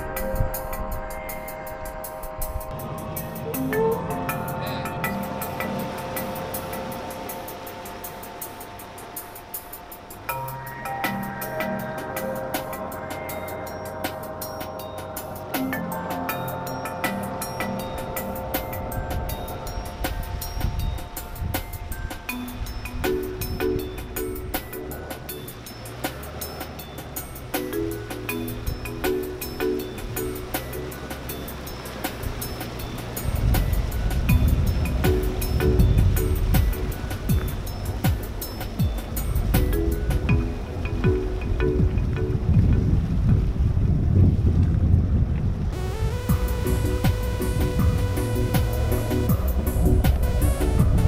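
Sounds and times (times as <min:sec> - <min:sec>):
fishing boat motor rumble: 0:00.0 - 0:44.5, 0:45.2 - 0:51.0
wind on microphone: 0:00.0 - 0:51.0
background music with quick beat: 0:02.2 - 0:42.9, 0:45.8 - 0:51.0
low rumble: 0:02.4 - 0:09.4, 0:41.8 - 0:51.0.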